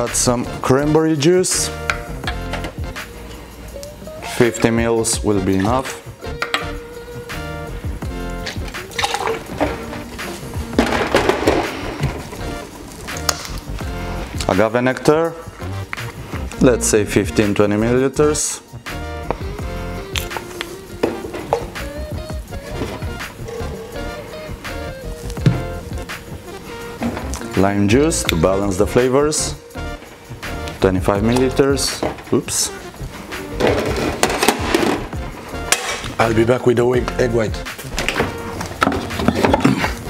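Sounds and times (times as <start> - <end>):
music with held notes: 1.6 - 17.5, 18.6 - 40.0
objects knocking and clicking: 10.8 - 12.5, 33.6 - 36.2, 38.0 - 40.0.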